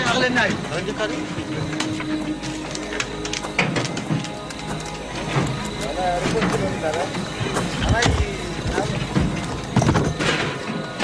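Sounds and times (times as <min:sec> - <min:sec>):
background music: 0:00.0 - 0:11.0
voices calling out: 0:00.0 - 0:11.0
knocks and clatter: 0:07.4 - 0:11.0.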